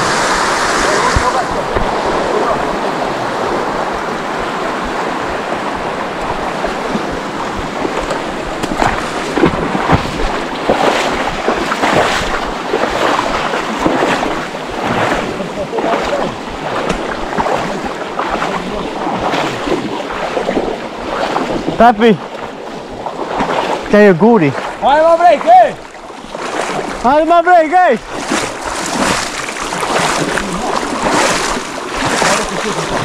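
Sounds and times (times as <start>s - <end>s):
legs wading through water: 0.0s - 33.0s
river water rushing over riffle: 0.0s - 33.0s.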